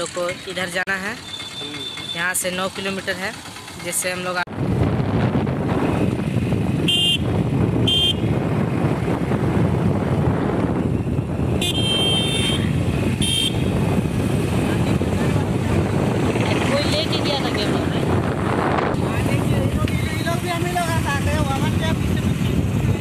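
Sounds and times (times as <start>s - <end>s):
motorcycle engine: 0.0s - 23.0s
horn beeps: 1.2s - 2.5s, 6.8s - 8.3s, 11.6s - 13.7s
wind rush: 4.5s - 23.0s.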